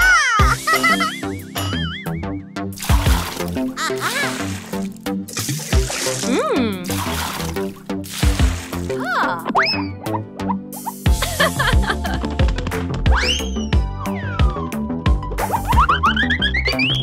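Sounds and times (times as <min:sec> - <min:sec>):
upbeat children's music: 0:00.0 - 0:02.3, 0:08.1 - 0:17.0.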